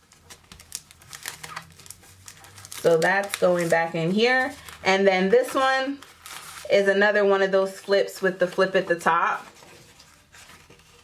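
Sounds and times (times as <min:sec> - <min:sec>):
plastic sleeves and card crinkling: 0:00.0 - 0:06.7, 0:09.2 - 0:11.0.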